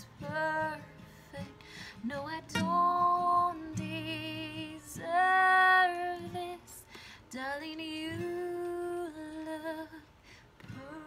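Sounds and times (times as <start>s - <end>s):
woman singing with vibrato: 0.0s - 10.1s, 10.7s - 11.0s
acoustic guitar: 0.0s - 11.0s.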